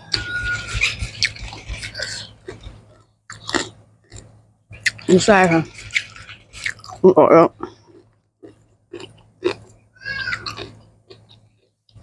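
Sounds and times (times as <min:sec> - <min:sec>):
person chewing: 0:00.0 - 0:12.0.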